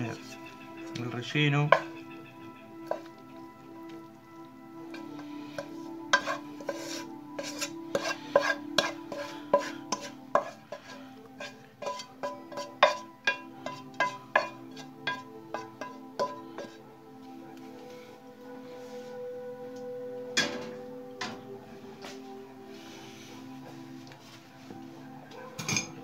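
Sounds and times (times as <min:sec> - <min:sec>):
wooden spatula scraping a pan: 0:00.0 - 0:03.4, 0:04.9 - 0:16.8
background music: 0:00.0 - 0:26.0
wood tapping on pan: 0:01.7 - 0:02.0, 0:11.4 - 0:16.7.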